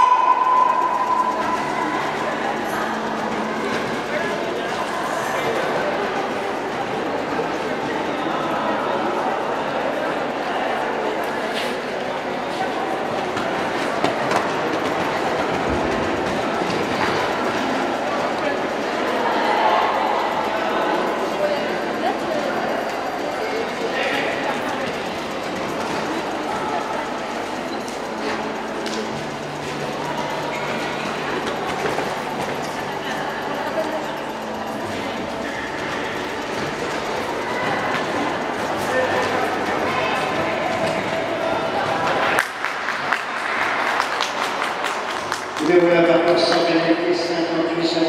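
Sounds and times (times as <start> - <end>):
steady background noise: 0.0 - 48.0
steady rumbling hall noise: 0.0 - 48.0.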